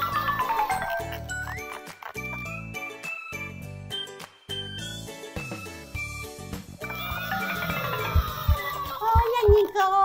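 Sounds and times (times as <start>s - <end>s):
tinkling jingle tune: 0.0s - 8.9s.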